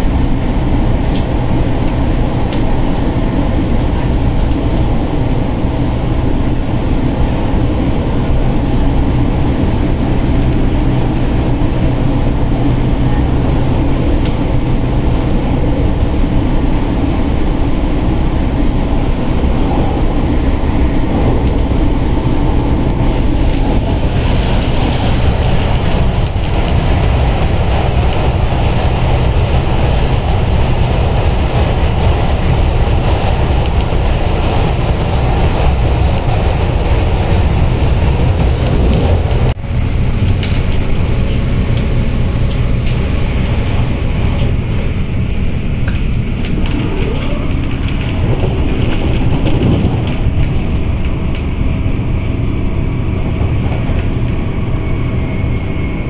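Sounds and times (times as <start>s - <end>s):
train carriage running noise: 0.0s - 56.0s.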